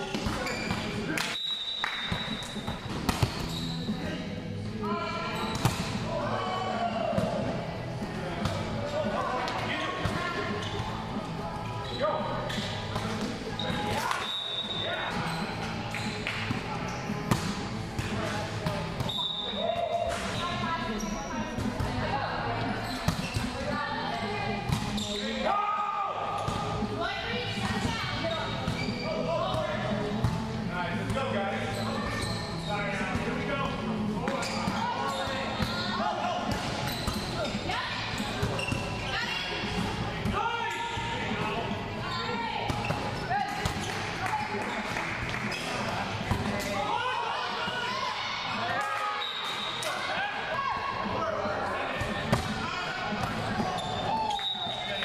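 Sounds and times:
players calling and chatting: 0.0 - 55.0.

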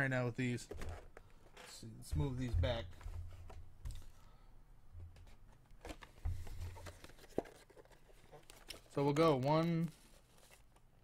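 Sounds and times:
dull bump: 2.0 - 4.0
cardboard boxes being handled: 5.1 - 8.8.

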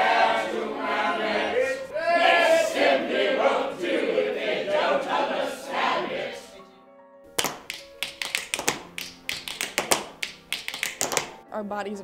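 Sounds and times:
group of voices chanting: 0.0 - 6.6
sharp taps: 7.4 - 11.4.

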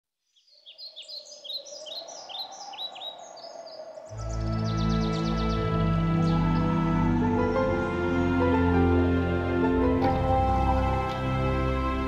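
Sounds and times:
birds chirping: 0.3 - 12.0.

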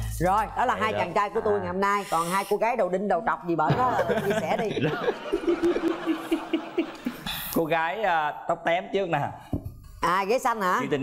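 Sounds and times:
studio laughter: 3.7 - 7.1.

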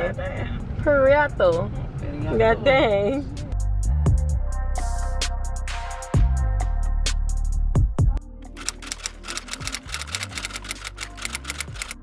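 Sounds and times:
electronic background music: 8.2 - 12.0
typewriter key clicks: 8.6 - 12.0.

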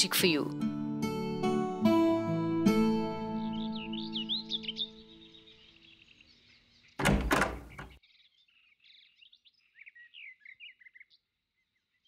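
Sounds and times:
birds chirping: 3.2 - 12.0.

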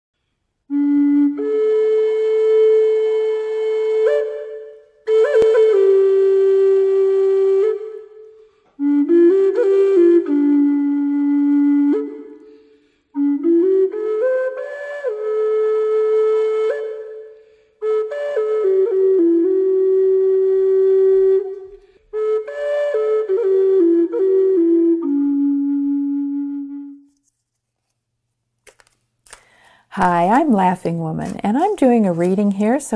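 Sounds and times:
flute holding long note: 0.7 - 27.2.

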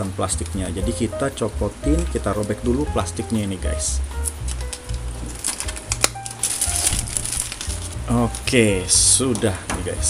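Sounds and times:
background music: 0.0 - 10.0
plastic shrink-wrap crinkling: 0.3 - 10.0.

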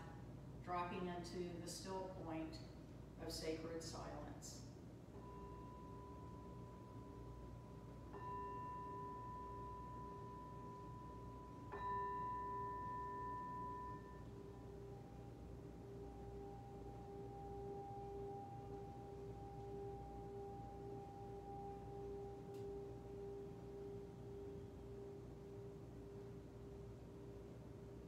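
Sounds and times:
singing bowl ringing: 5.2 - 28.0.

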